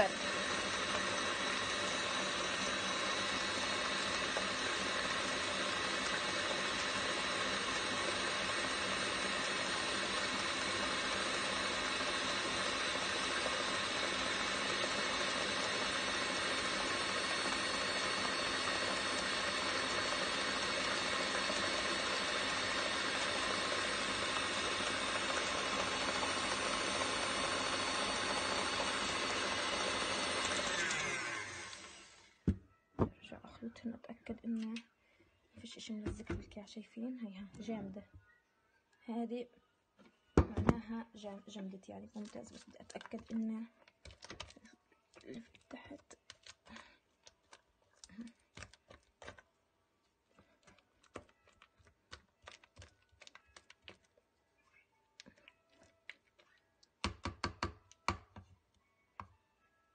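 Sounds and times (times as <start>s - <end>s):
stand mixer running: 0.0s - 32.3s.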